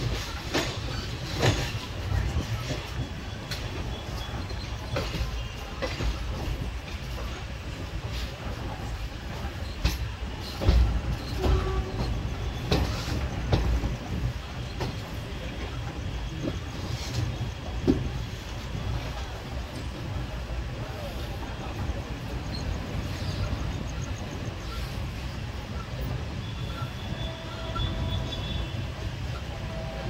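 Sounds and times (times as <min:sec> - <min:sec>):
wheels clacking over rail joints: 0:00.0 - 0:21.0
train rumbling on track: 0:00.0 - 0:30.0.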